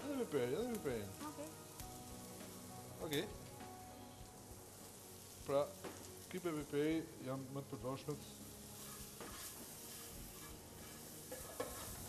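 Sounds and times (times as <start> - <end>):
peppers sizzling in a frying pan: 0.0 - 12.0.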